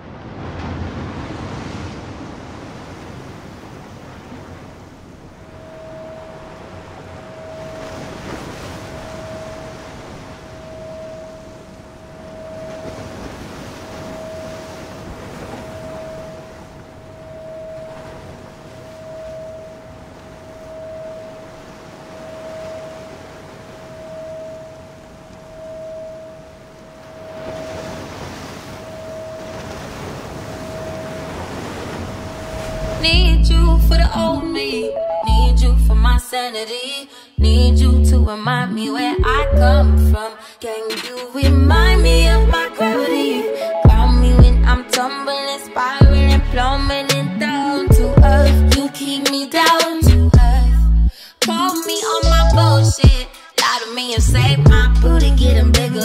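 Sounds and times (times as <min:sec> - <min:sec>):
ocean surf breaking: 0:00.0 - 0:35.2, 0:40.3 - 0:43.9
pulsing steady tone: 0:05.4 - 0:34.6, 0:43.5 - 0:44.8.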